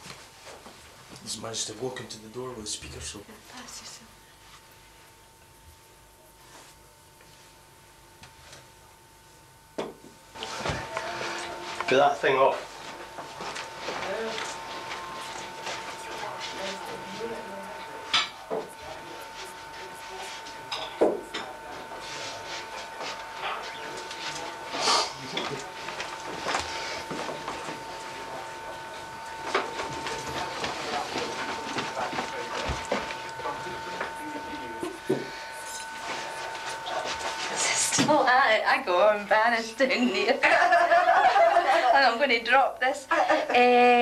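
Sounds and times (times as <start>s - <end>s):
high-pitched hum: 9.7s - 40.0s
faint voices: 10.4s - 39.7s.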